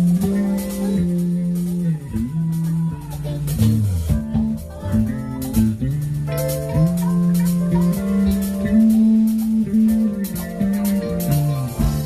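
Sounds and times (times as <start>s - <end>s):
drums with cymbal strikes: 0.0s - 12.0s
electric guitar held notes: 0.0s - 12.0s.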